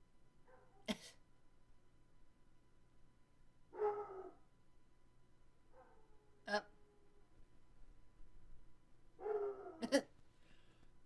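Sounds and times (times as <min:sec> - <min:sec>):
animal whining with sharp yip: 0:09.2 - 0:09.8.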